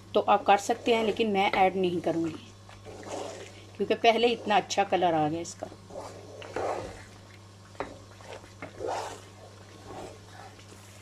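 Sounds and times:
steady low hum: 0:00.0 - 0:11.0
spatula scraping in pan: 0:00.5 - 0:04.7, 0:05.9 - 0:07.1, 0:07.8 - 0:11.0.

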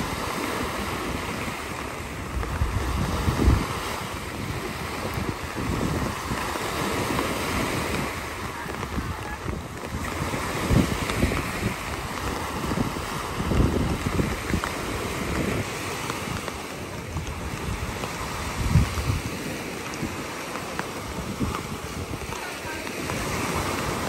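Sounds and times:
waves breaking on beach: 0:00.0 - 0:24.0
wind gusting on microphone: 0:00.0 - 0:24.0.

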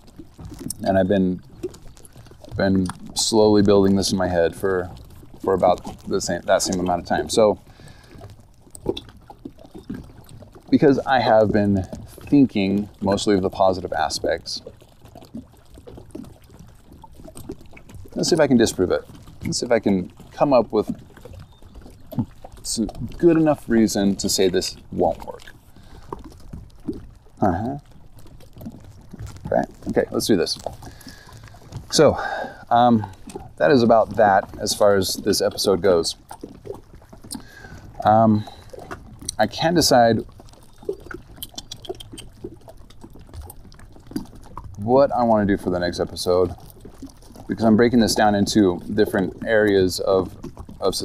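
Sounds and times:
faint irregular ticks: 0:00.0 - 0:51.0
small waves lapping: 0:00.0 - 0:51.0.

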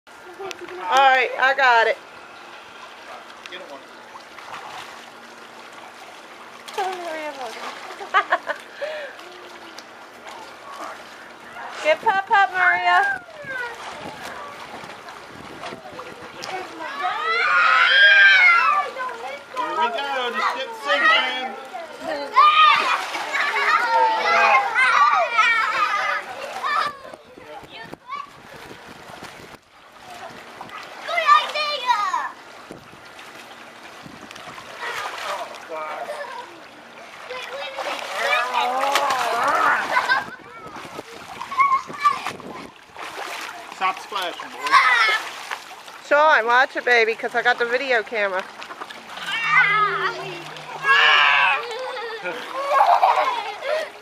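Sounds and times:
pool water sloshing: 0:00.1 - 0:54.0
faint children's voices: 0:08.8 - 0:11.8, 0:12.8 - 0:29.1, 0:29.9 - 0:32.5, 0:34.6 - 0:45.5, 0:48.8 - 0:54.0.

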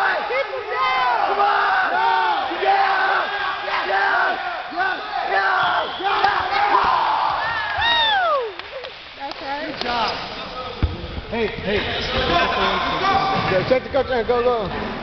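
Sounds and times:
crowd shouting and cheering: 0:00.0 - 0:08.9, 0:10.4 - 0:15.0
long falling shout: 0:06.5 - 0:08.6.

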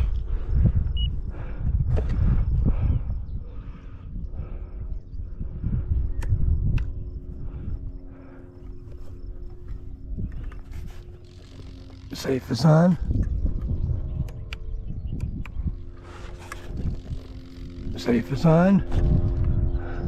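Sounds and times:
wind rumbling on microphone: 0:00.0 - 0:20.0
sharp clicks: 0:06.2 - 0:07.0, 0:13.1 - 0:19.6.

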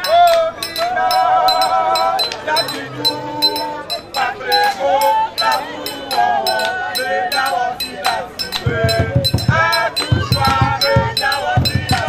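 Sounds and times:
group of voices singing: 0:00.0 - 0:12.0
high clinking percussion beat: 0:00.0 - 0:12.0.

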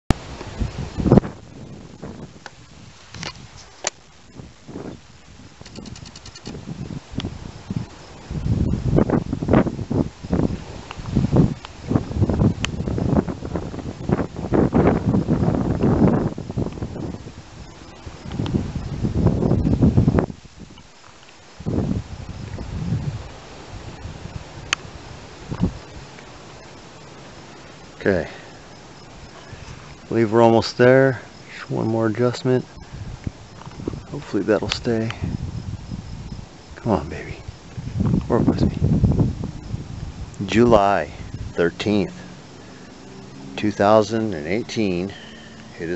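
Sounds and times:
camera handling rustling: 0:05.6 - 0:06.6
sharp clicks: 0:05.6 - 0:06.6.

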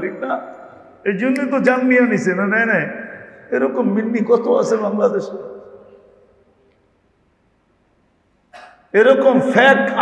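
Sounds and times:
man speaking: 0:00.0 - 0:05.7, 0:08.9 - 0:10.0.

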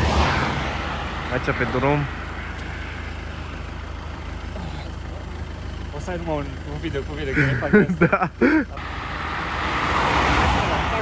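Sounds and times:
car traffic road noise: 0:00.0 - 0:11.0.

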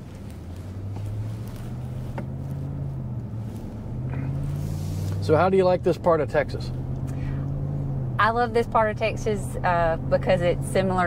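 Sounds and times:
road noise: 0:00.0 - 0:11.0
truck engine drone: 0:00.0 - 0:11.0.

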